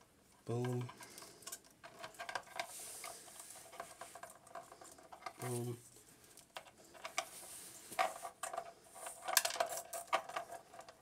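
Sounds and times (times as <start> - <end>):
soft rubbing of plastic: 0.2 - 11.0.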